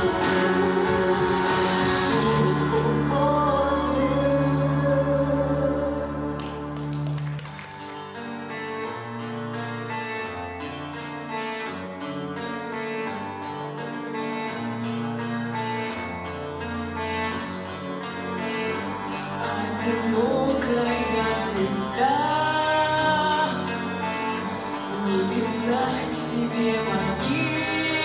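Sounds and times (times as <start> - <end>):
person singing: 0.0 - 7.2, 19.2 - 28.0
picked acoustic guitar: 0.0 - 28.0.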